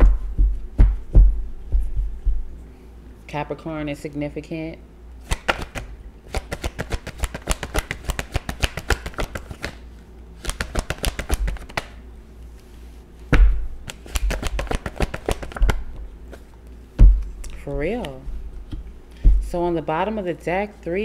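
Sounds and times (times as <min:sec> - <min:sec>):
cards being shuffled: 0:05.3 - 0:09.8, 0:10.4 - 0:12.0, 0:13.8 - 0:16.5.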